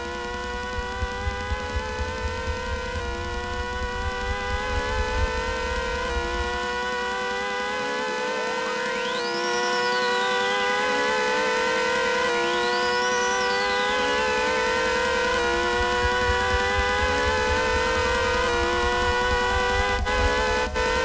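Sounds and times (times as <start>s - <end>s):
low pulsing beat: 0.0s - 7.4s, 13.8s - 21.0s
hand-cranked siren wailing: 0.0s - 21.0s
electronic tones: 12.3s - 21.0s.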